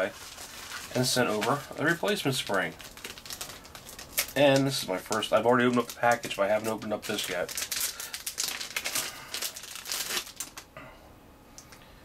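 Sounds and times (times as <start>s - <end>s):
plastic bag crinkling: 0.0s - 10.7s.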